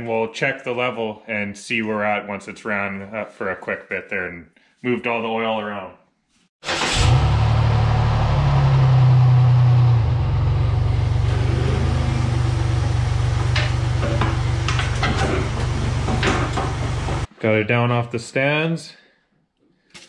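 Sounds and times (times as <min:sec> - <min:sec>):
car engine starting and idling: 0:06.6 - 0:17.3.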